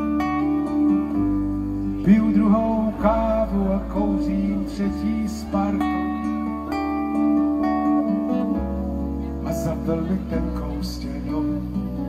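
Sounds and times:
held bass notes: 0.0 - 12.0
strummed acoustic guitar: 0.0 - 12.0.

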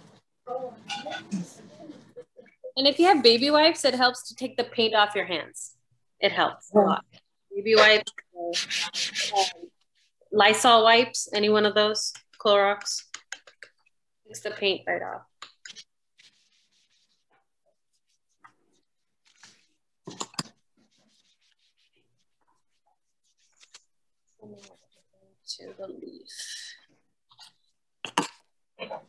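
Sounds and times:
sandpaper rubbing on wood: 8.5 - 9.6.

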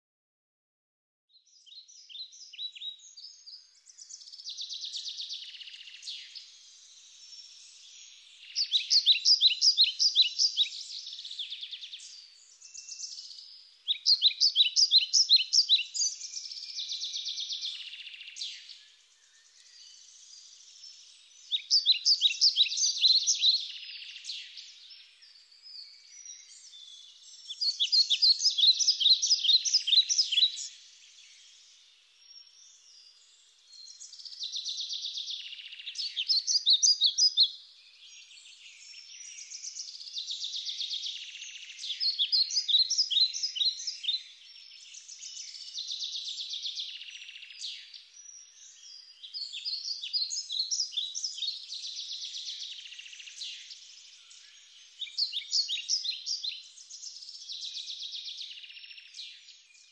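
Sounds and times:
bird singing: 1.3 - 59.9
faint bird chirps: 1.3 - 59.9.

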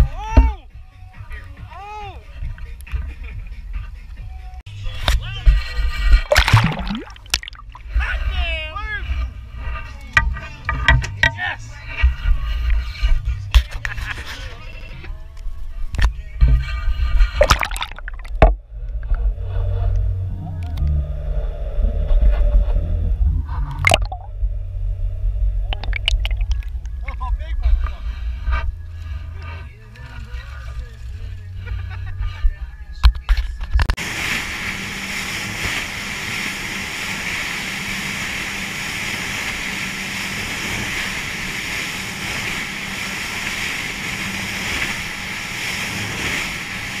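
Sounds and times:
muffled underwater rumble: 4.7 - 47.0
water rushing along hull: 6.2 - 8.4, 17.4 - 18.6, 23.7 - 24.3, 25.7 - 27.2, 34.0 - 47.0
low engine drone: 17.4 - 47.0.

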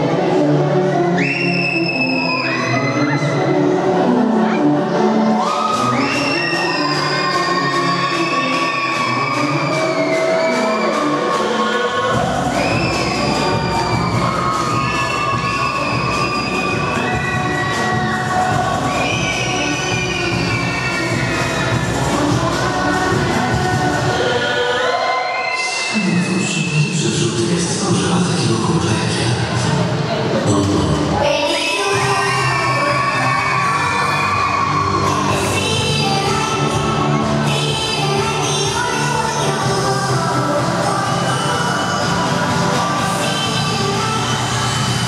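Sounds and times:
loud dance music over a pa: 0.0 - 45.0
crowd cheering: 5.2 - 26.6, 31.2 - 37.6.

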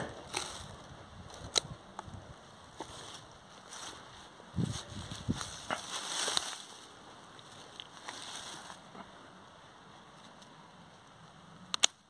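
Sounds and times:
leaves and vines rustling: 0.0 - 11.4
pruning shears snipping stem: 11.7 - 12.0.

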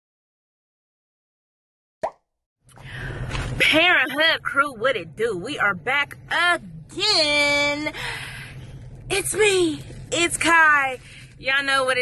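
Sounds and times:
low rumble of car cabin: 2.6 - 12.0.

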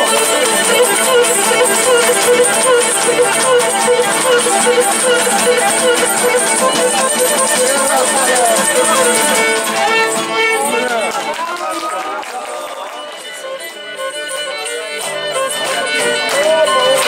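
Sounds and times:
bowed fiddle playing: 0.0 - 17.0
lutes strumming: 0.0 - 17.0
voices: 0.0 - 17.0.

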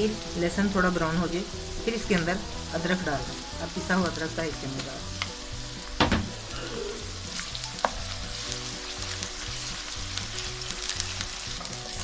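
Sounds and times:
food sizzling in hot oil: 0.0 - 12.0
spoon stirring in wok: 7.4 - 12.0.

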